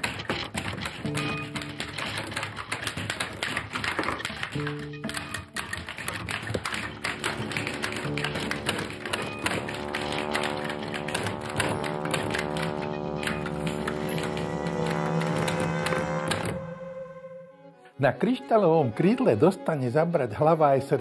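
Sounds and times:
typewriter keys clicking: 0.0s - 16.6s
background music: 0.0s - 21.0s.

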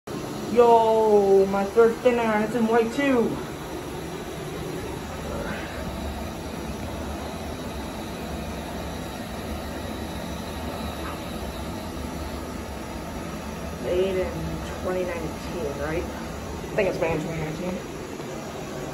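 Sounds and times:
room noise rumble and hiss: 0.1s - 18.9s.

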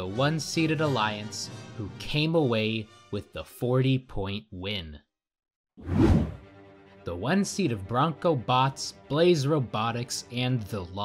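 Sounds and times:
whoosh transition effect: 5.8s - 6.4s.

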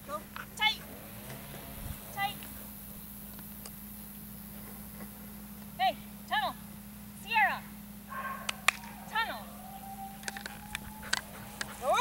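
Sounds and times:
dog barking: 8.1s - 9.2s
sharp clicks: 10.2s - 11.8s.

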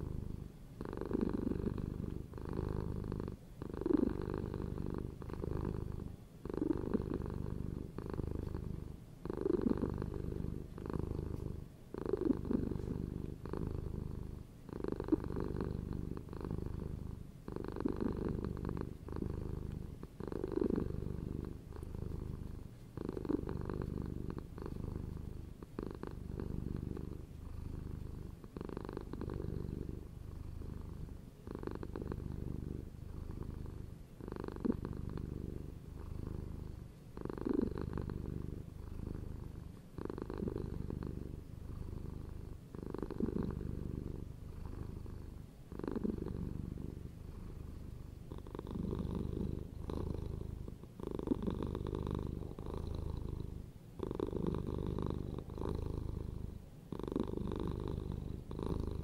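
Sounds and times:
cat purring: 0.0s - 59.0s.

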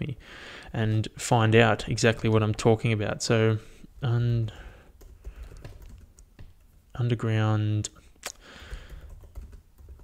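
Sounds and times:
keystrokes on computer keyboard: 5.0s - 6.6s, 8.6s - 10.0s.

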